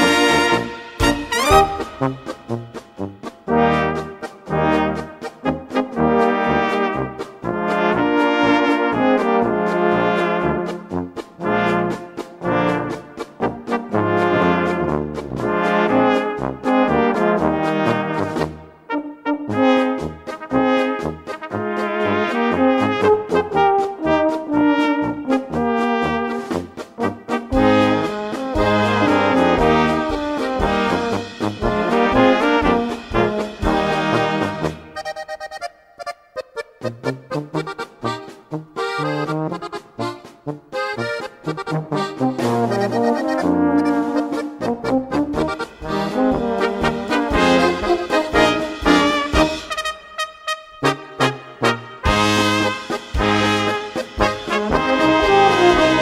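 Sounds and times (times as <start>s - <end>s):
tenor horn playing: 0.0s - 10.7s, 13.7s - 35.0s, 41.6s - 56.0s
brass band backing track: 0.0s - 56.0s.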